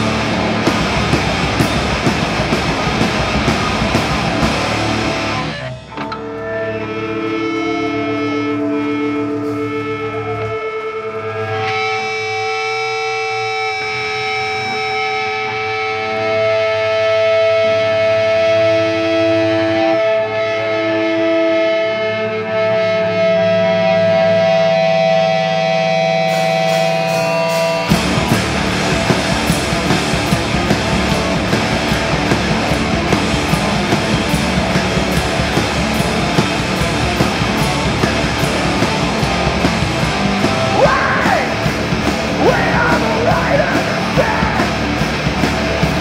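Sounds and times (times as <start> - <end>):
bass guitar: 0.0 - 46.0
distorted electric guitars: 0.0 - 46.0
drums: 0.0 - 46.0.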